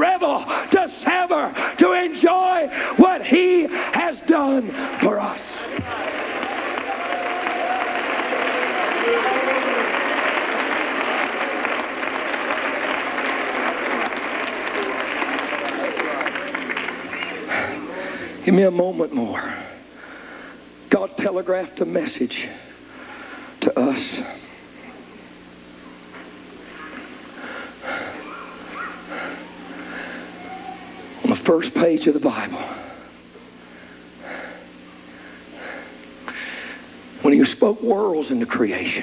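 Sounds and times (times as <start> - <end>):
congregation calling out: 0.0 - 23.0, 23.6 - 36.0
steady low hum: 0.0 - 39.0
crowd applauding: 4.9 - 18.4.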